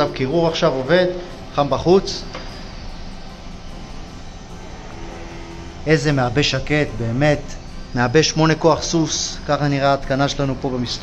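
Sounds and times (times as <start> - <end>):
air conditioner fan whirring: 0.0 - 11.0.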